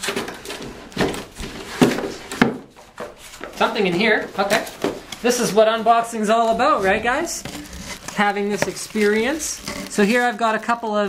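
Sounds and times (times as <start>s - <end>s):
cardboard scraping and rubbing: 0.0s - 10.7s.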